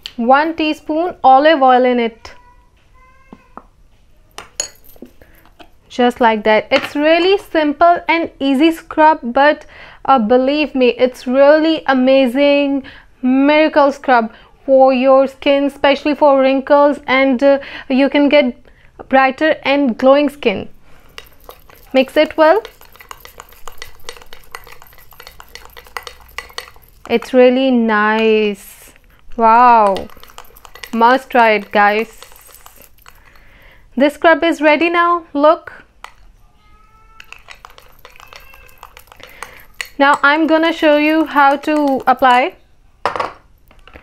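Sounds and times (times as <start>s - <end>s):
metal spoon clinking glass bowl: 4.6s - 5.5s, 21.1s - 27.6s, 29.5s - 33.6s, 37.2s - 42.6s.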